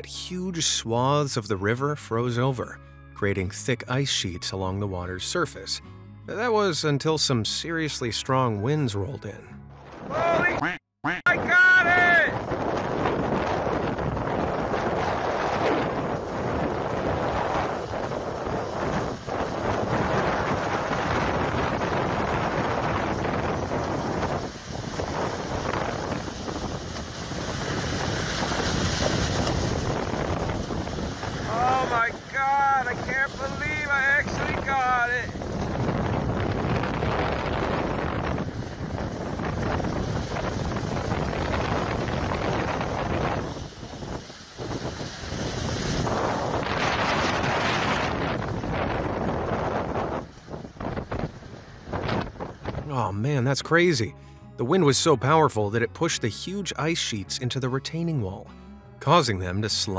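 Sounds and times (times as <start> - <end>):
strong wind on microphone: 11.3 - 52.9.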